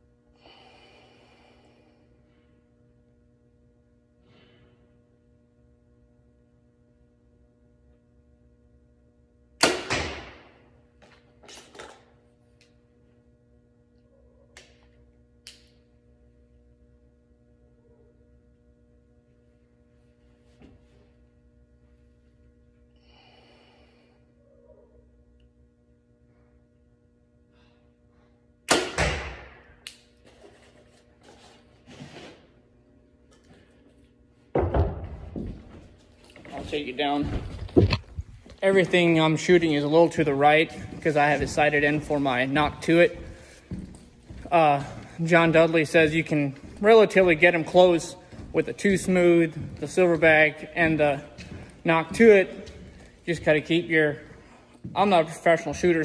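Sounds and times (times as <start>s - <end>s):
bow shot: 9.6s - 10.6s, 28.7s - 29.8s.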